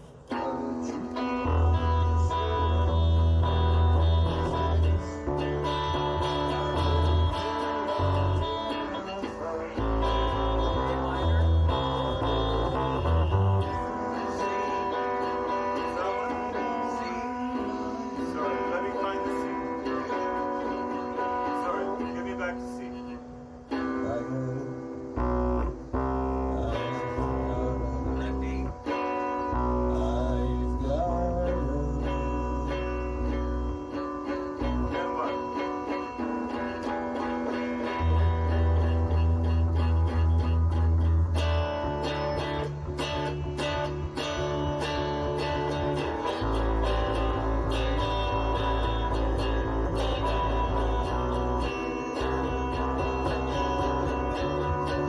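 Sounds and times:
bass line: 0.0s - 22.6s, 23.8s - 55.0s
rock guitars jamming: 0.0s - 55.0s.

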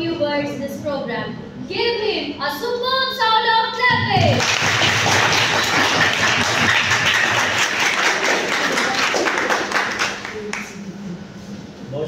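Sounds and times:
audience applauding: 4.4s - 10.8s.

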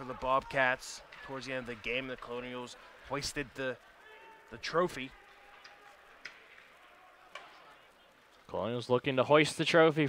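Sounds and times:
faint ice rink sound: 0.0s - 10.0s.

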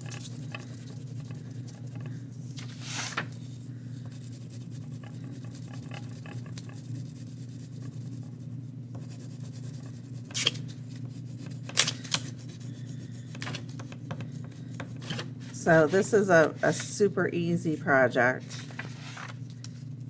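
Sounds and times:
steady low hum: 0.0s - 20.0s
crayon scribbling on paper: 4.1s - 10.5s.

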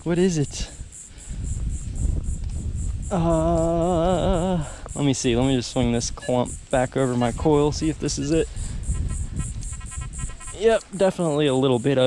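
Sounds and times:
small ticks: 2.4s - 3.7s, 8.7s - 11.2s.

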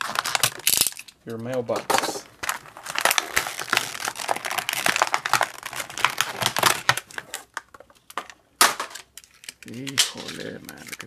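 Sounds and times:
plastic packaging crackling: 0.0s - 11.0s
sharp plastic crack: 0.0s - 11.0s.

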